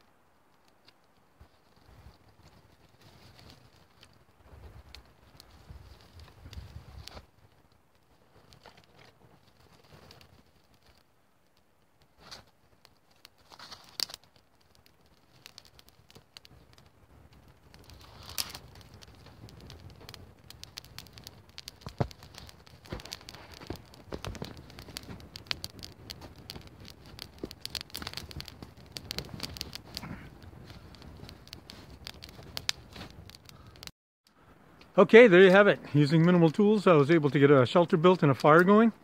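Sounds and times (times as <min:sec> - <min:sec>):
twig fire crackling and popping: 0:00.0 - 0:39.0.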